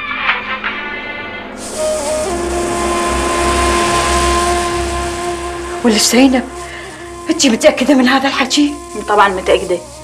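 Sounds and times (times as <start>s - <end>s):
music: 0.0s - 10.0s
long held tones: 1.6s - 10.0s.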